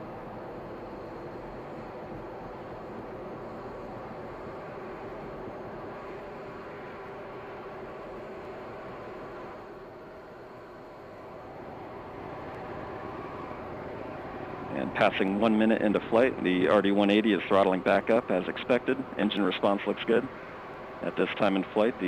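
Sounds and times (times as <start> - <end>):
rocket engine rumble: 10.9 - 22.0.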